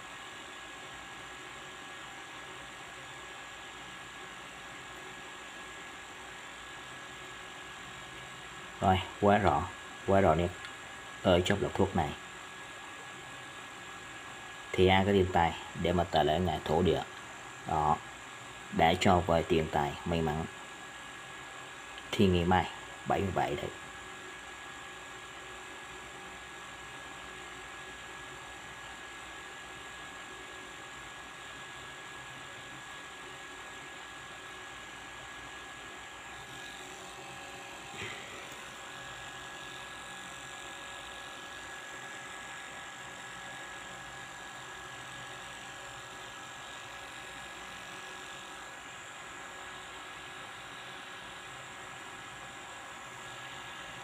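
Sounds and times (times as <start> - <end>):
low whirring hum and hiss: 0.0 - 54.0.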